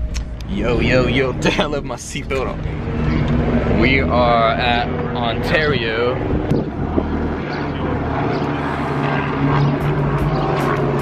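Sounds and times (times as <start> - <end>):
helicopter flying overhead: 0.0 - 11.0.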